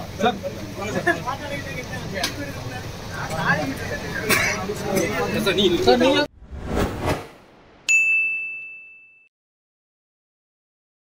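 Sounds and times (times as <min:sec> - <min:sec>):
bright ding: 0:07.9 - 0:09.3.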